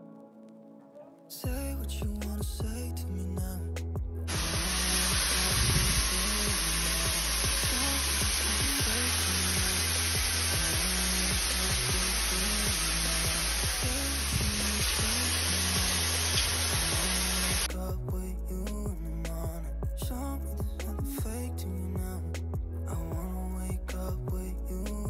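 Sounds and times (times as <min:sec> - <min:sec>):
background music with steady beat: 0:00.0 - 0:25.0
shower water spraying: 0:04.3 - 0:17.7.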